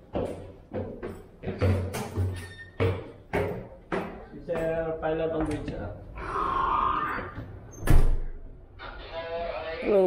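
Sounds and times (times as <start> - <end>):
door banging shut: 7.8 - 8.4.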